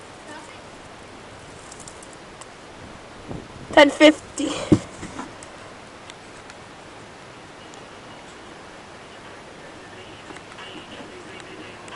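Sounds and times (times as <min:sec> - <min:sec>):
steady outdoor hiss: 0:00.0 - 0:11.9.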